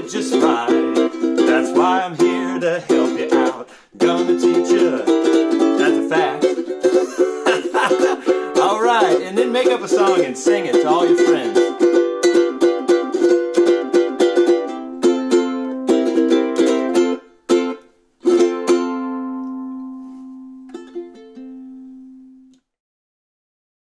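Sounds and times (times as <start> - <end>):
ukulele strumming: 0.0 - 22.6.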